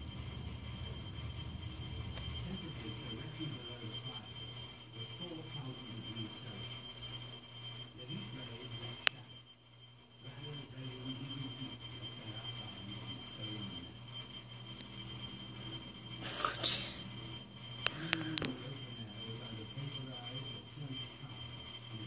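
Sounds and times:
faint indistinct murmur: 0:00.0 - 0:22.0
low hum: 0:00.0 - 0:22.0
thin high whine: 0:00.0 - 0:22.0.

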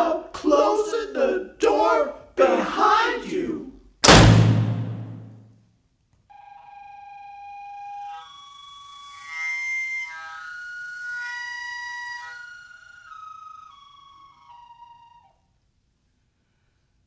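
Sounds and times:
low ringing thump: 0:04.0 - 0:05.4.

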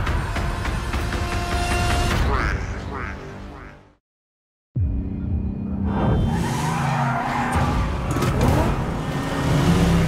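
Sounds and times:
engines revving: 0:06.2 - 0:10.0.

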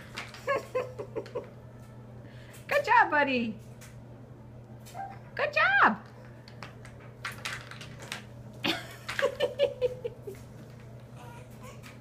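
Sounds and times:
baby jumper clicks and rattles: 0:06.0 - 0:09.6.

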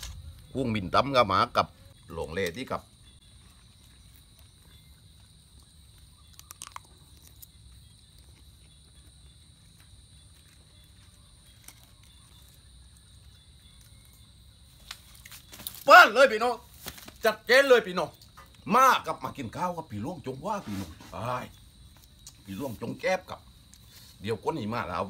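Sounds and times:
man chewing rice: 0:03.0 - 0:14.2.

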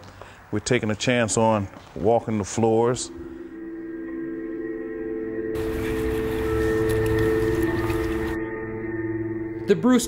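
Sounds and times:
sustained low drone: 0:03.1 - 0:09.7.

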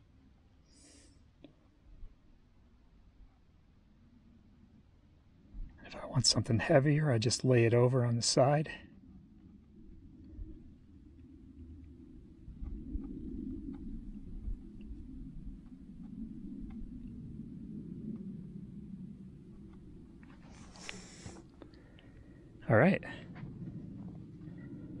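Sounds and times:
wind buffeting the microphone: 0:09.2 - 0:25.0
faint soft ticks: 0:12.6 - 0:17.4
brief hiss: 0:20.4 - 0:21.4.

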